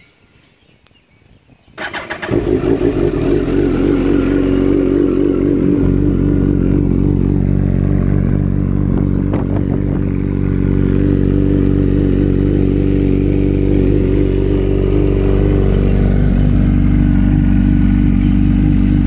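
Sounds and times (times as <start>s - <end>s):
motorcycle engine idling: 1.8s - 19.0s.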